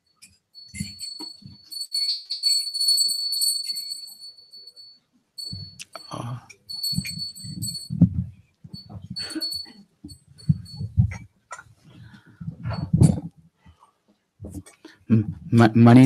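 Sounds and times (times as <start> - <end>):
metallic ring: 0.0 - 11.2
faint metallic pings: 0.0 - 13.2
microphone handling thumps: 6.8 - 9.2, 10.0 - 13.3.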